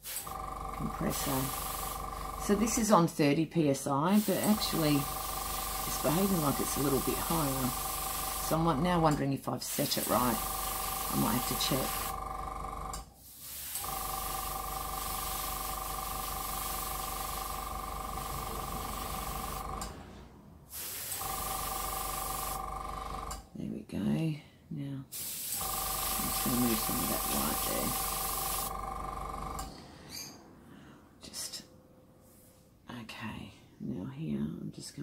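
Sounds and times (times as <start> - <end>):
air hissing through airbrush: 0.0 - 0.4, 1.1 - 2.2, 4.1 - 8.6, 9.7 - 12.2, 13.2 - 19.9, 20.7 - 22.6, 25.2 - 28.8
airbrush compressor humming: 0.0 - 3.4, 4.0 - 23.5, 25.2 - 30.0.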